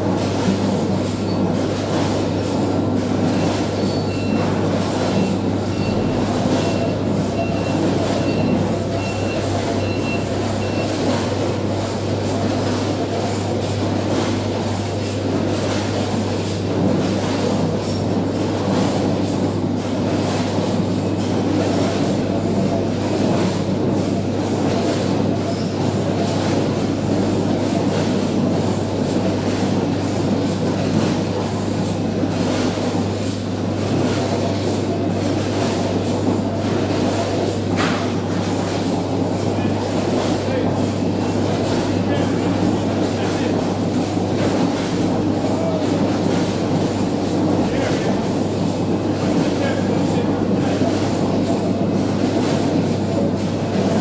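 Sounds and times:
conveyor machinery hum: 0:00.0 - 0:54.0
short high beeps: 0:05.7 - 0:11.0.

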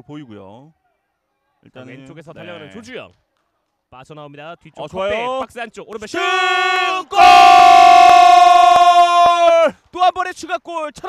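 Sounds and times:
commentator shouting: 0:05.0 - 0:10.6.

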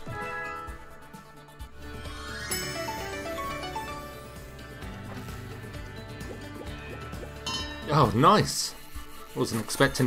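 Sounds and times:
slot game background music: 0:00.0 - 0:10.0
short bright effect sound: 0:02.0 - 0:04.4
slot reels spinning and stopping: 0:02.0 - 0:04.4.

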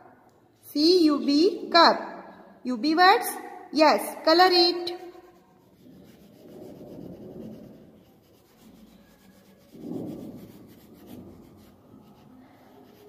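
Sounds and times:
colouring strokes rubbing on paper: 0:04.5 - 0:13.0.

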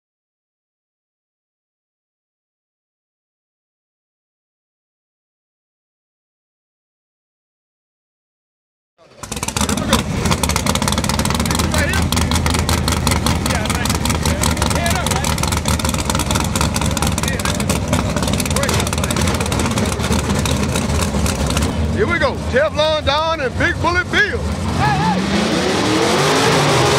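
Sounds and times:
race car engines idling: 0:09.0 - 0:26.9.

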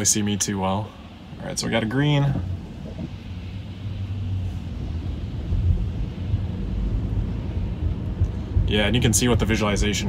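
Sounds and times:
tyres rumbling on wet road: 0:00.0 - 0:10.0
soft low thumps: 0:02.2 - 0:09.0.

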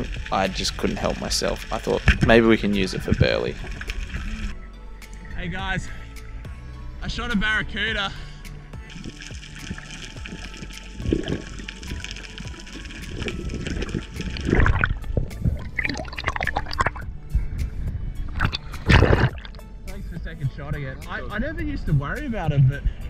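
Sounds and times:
water splashing: 0:00.0 - 0:04.6, 0:08.8 - 0:17.1, 0:18.2 - 0:19.7
water sloshing and gurgling: 0:00.0 - 0:06.6, 0:08.6 - 0:19.8
background music: 0:00.0 - 0:23.0.

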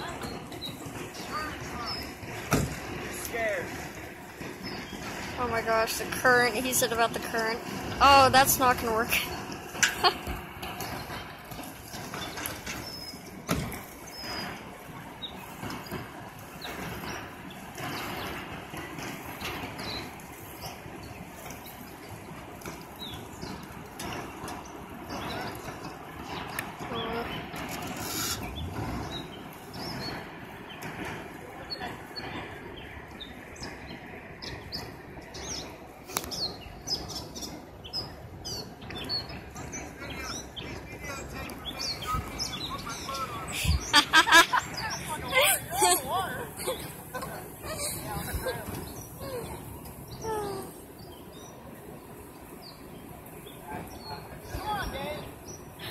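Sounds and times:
low background ambience: 0:00.0 - 0:55.9
small birds chirping: 0:00.0 - 0:55.9
faint distant voices: 0:13.6 - 0:55.9.

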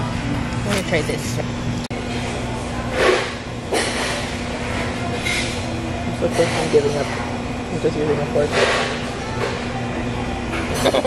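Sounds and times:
restaurant room hum: 0:00.0 - 0:11.0.

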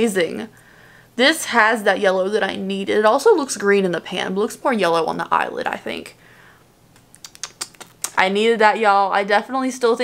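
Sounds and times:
faint breathy hiss: 0:00.5 - 0:01.2, 0:06.1 - 0:06.8.

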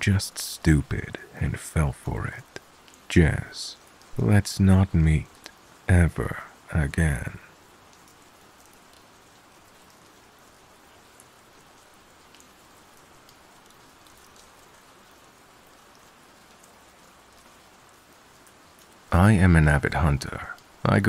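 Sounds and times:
light raindrop ticks: 0:00.0 - 0:21.0
steady rain: 0:00.0 - 0:21.0.

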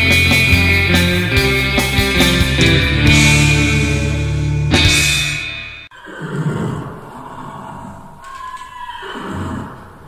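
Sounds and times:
horse whinnying: 0:05.9 - 0:09.9.

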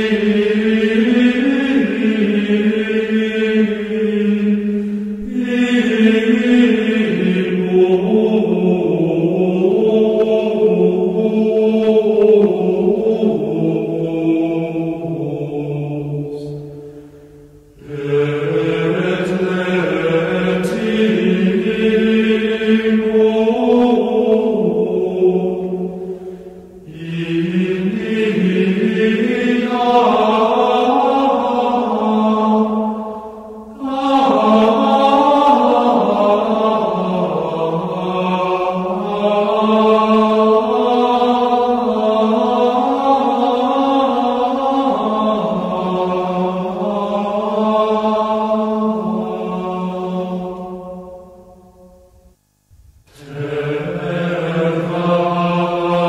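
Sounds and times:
devotional chanting: 0:00.0 - 0:56.0.

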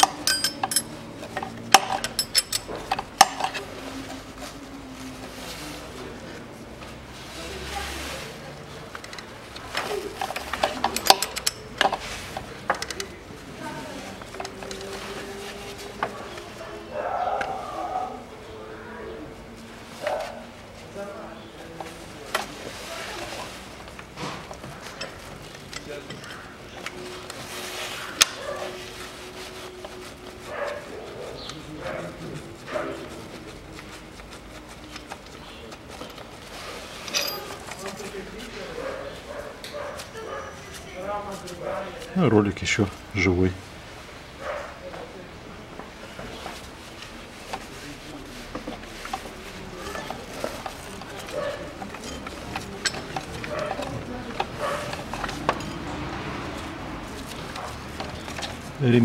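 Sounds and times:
wrench clicking on metal bolts: 0:00.0 - 0:03.6, 0:10.2 - 0:12.0.

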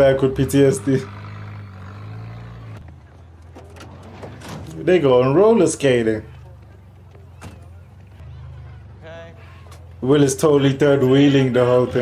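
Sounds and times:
street ambience: 0:00.0 - 0:12.0
vehicle engine hum: 0:00.0 - 0:12.0.

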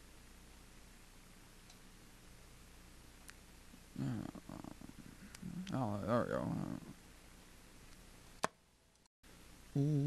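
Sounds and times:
faint click: 0:01.6 - 0:01.8
man grunting: 0:04.0 - 0:04.6.

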